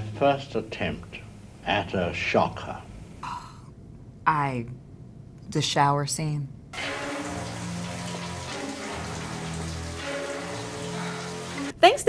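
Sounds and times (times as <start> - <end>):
low held music notes: 6.8 - 11.7
shower spraying on tiles: 6.8 - 11.7.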